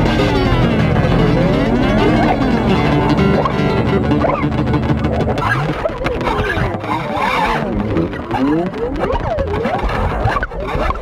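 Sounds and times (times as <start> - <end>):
bass guitar: 0.0 - 11.0
improvised electric guitar: 0.0 - 11.0.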